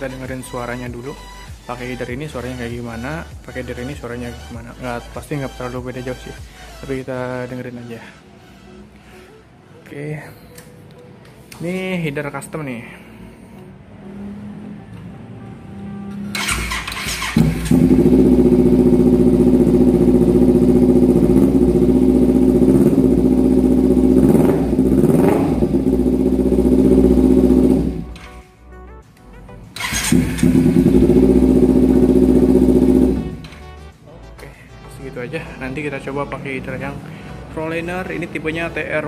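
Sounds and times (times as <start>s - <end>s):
motorcycle engine running and revving: 16.3s - 28.3s, 29.8s - 33.5s.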